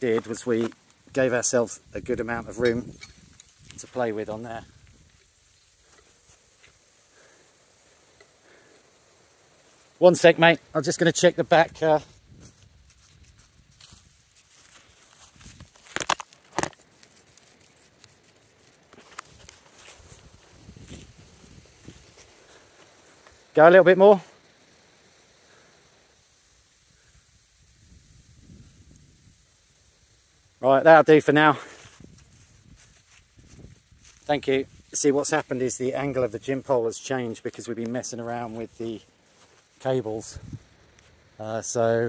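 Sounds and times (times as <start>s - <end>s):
footsteps on grass: 0.0s - 8.7s, 9.4s - 23.6s, 31.5s - 41.4s
wind rumble on microphone: 1.8s - 3.9s, 20.0s - 22.2s, 27.6s - 29.5s, 31.9s - 34.9s.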